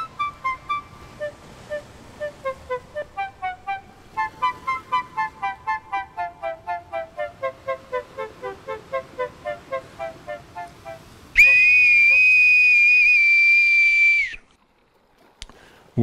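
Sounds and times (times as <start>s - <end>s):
boatswain's pipe shrill note: 0.0s - 13.2s.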